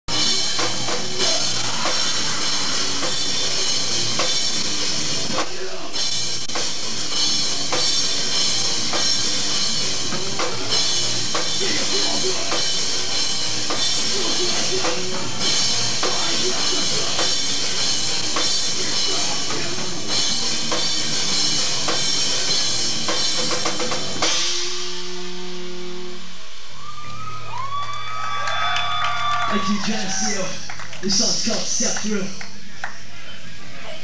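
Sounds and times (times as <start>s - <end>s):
drum kit beats: 0.0s - 28.0s, 28.6s - 33.1s
rock band playing live: 0.1s - 27.0s.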